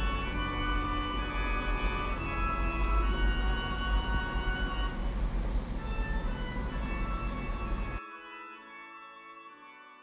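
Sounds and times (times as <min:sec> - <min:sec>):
steady low hum: 0:00.0 - 0:08.0
organ playing slow chords: 0:00.0 - 0:10.0.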